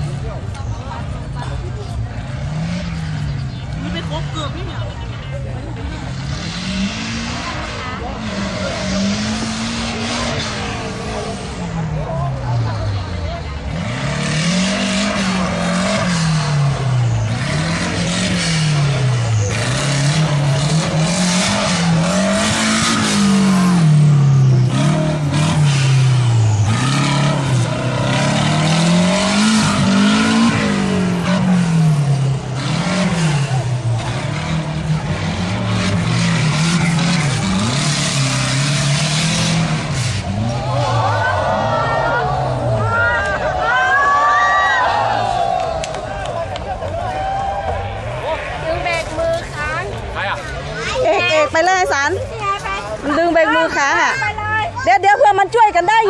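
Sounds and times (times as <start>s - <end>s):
race car engine revving: 0.0s - 56.0s.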